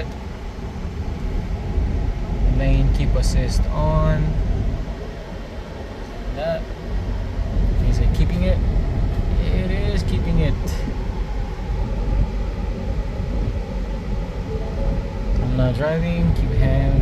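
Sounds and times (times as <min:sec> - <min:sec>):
road and engine noise in cab: 0:00.0 - 0:17.0.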